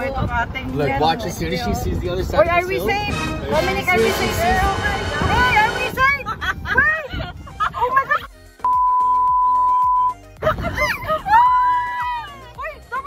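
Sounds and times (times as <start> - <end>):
background music: 0.0 - 13.0
people shrieking and laughing: 6.0 - 8.3, 10.4 - 13.0
high-pitched beep: 8.6 - 10.2.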